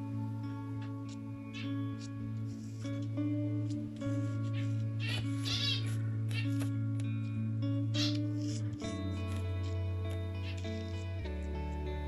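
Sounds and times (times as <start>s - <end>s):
background music: 0.0s - 12.0s
finches high calls: 0.1s - 3.2s, 4.2s - 6.8s, 7.8s - 11.2s.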